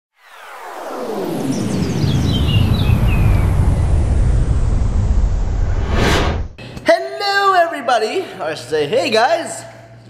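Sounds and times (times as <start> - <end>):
falling high glides: 0.2 - 6.6
falling sweeps: 0.2 - 6.6
deep rumbling roar: 1.6 - 6.6.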